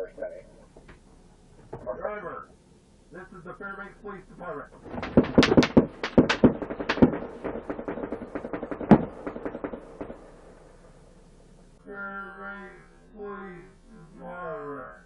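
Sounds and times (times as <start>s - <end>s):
man speaking over loudspeaker: 0.0s - 0.6s, 1.8s - 2.5s, 3.1s - 4.8s
rapid sharp cracks: 4.8s - 11.8s.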